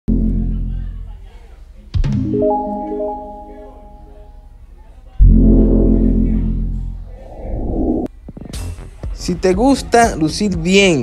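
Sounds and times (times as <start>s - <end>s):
deep bass hit with low chord: 0.1s - 1.1s, 5.2s - 7.2s
mallet notes: 2.2s - 4.5s
rising whoosh: 7.0s - 8.1s.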